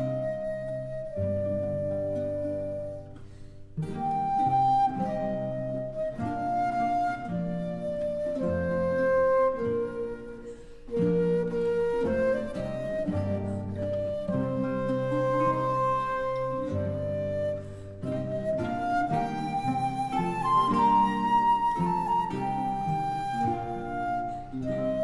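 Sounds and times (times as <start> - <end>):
flute melody: 0.0 - 25.0
plucked strings: 0.0 - 25.0.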